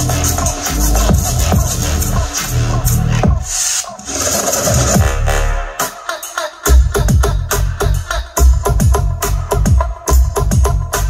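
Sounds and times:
deep bass sweeping down: 0.0s - 3.6s, 4.8s - 5.7s
loud electronic music: 0.0s - 11.0s.

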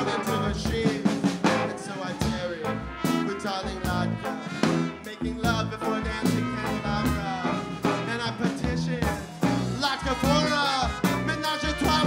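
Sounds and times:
live rock band: 0.0s - 12.0s
man singing: 0.0s - 12.0s.

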